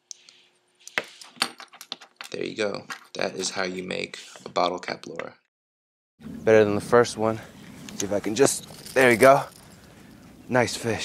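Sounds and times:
short rustle: 7.4s - 10.2s
small metal clicks and clinks: 8.4s - 10.3s.

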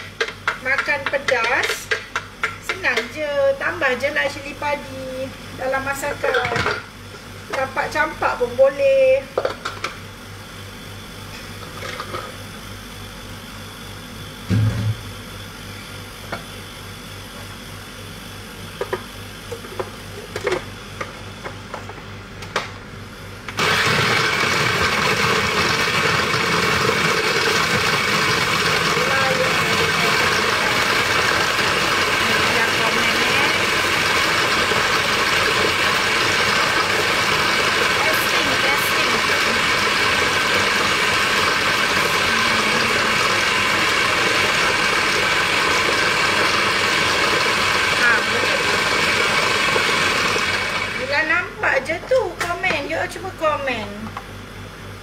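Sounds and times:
extractor fan whirring: 0.0s - 55.0s.

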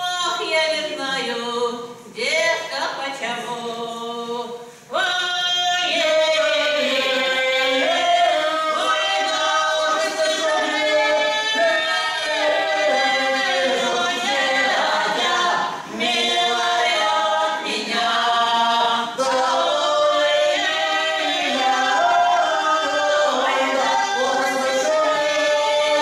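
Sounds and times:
mixed ensemble singing a cappella: 0.0s - 26.0s.

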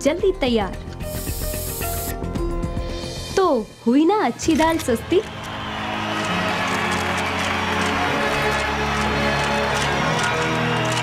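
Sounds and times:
background music with held notes: 0.0s - 11.0s
pressure cooker hissing: 1.0s - 2.2s.

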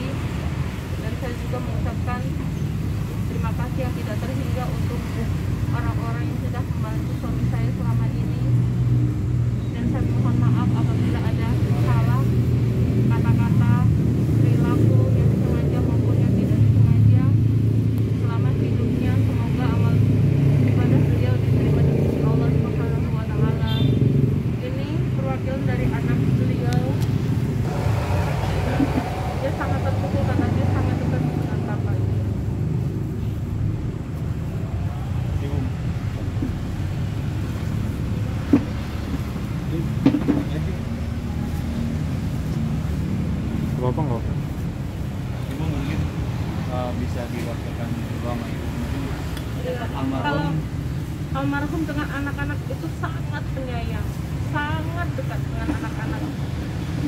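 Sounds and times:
vehicle engine rumbling: 0.0s - 57.0s.

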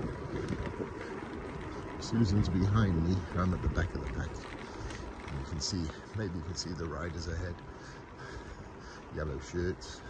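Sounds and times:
wind rushing over microphone: 0.0s - 5.6s
bicycle tyres rumbling on asphalt: 0.0s - 10.0s.

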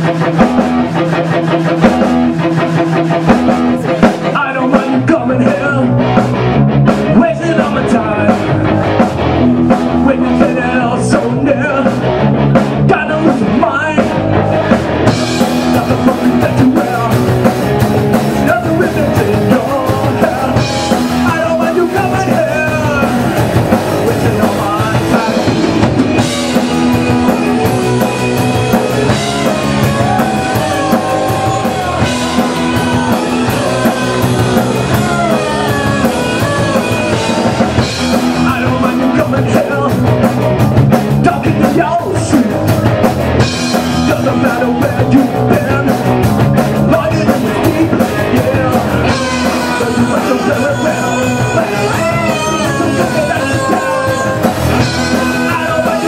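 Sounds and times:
rock band playing: 0.0s - 56.0s.

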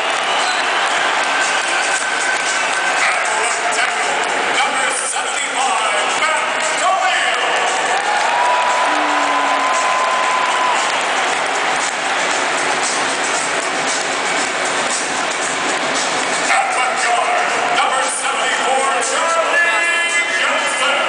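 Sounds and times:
stadium crowd noise: 0.0s - 21.0s.

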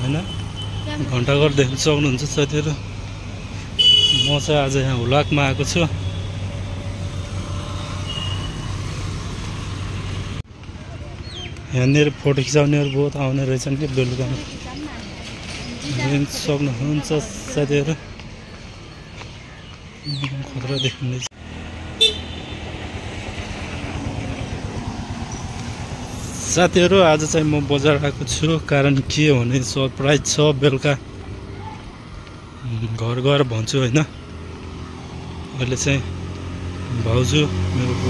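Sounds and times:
street traffic rumble: 0.0s - 38.0s
vehicle engines droning: 0.0s - 38.0s
short high horn toot: 22.0s - 22.5s.

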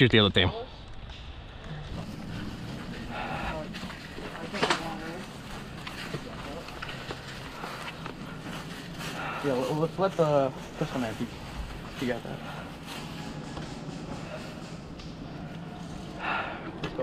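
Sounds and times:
low background rumble: 0.6s - 16.8s
distant voices calling out: 0.6s - 17.0s.

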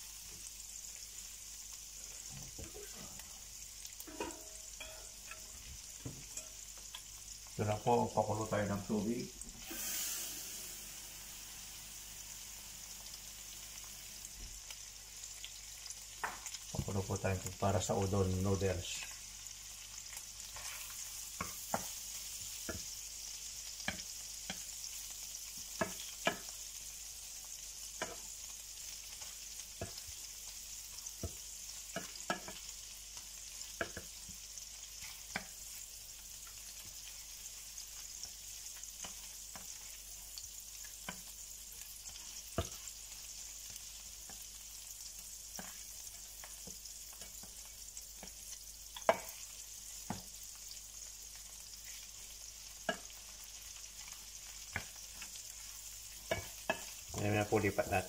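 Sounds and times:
prawns sizzling in oil: 0.0s - 58.0s
wooden spatula tapping and scraping: 4.0s - 7.1s, 20.5s - 22.9s, 23.8s - 24.7s, 25.6s - 26.6s, 29.2s - 30.2s, 31.2s - 32.7s, 33.6s - 35.8s, 39.0s - 40.0s, 40.8s - 41.4s, 42.1s - 42.9s, 45.5s - 48.4s, 49.0s - 50.4s, 52.8s - 53.2s, 54.0s - 57.4s.

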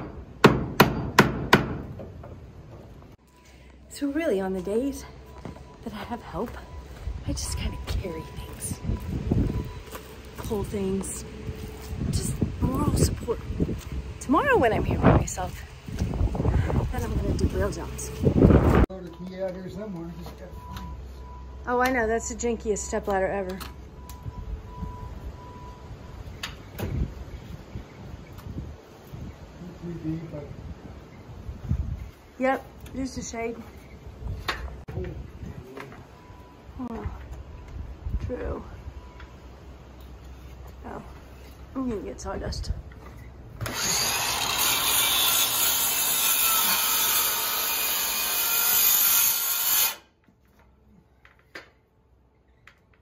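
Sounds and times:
sharp knocks on wood: 0.0s - 2.1s
circular saw cutting wood: 43.6s - 50.2s.

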